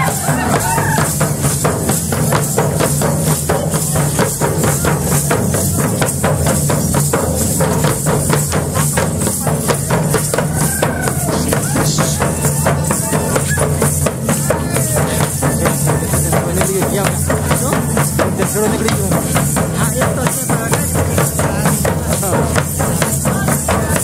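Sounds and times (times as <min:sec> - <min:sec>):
voices calling out: 0:00.0 - 0:02.9, 0:08.8 - 0:24.0
large drums beaten fast: 0:00.0 - 0:24.0.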